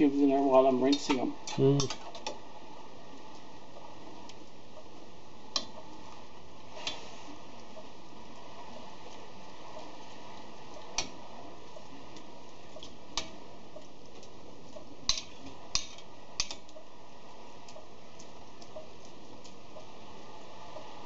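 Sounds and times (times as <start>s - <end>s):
steady low hiss: 0.0s - 21.0s.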